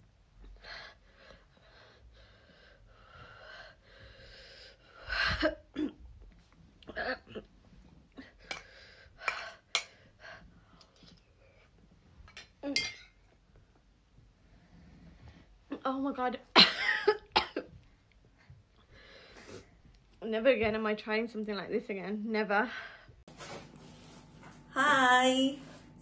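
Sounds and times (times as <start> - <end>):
woman breathing hard: 0.5 - 5.4
woman coughing and gasping: 5.4 - 6.0, 16.5 - 17.8.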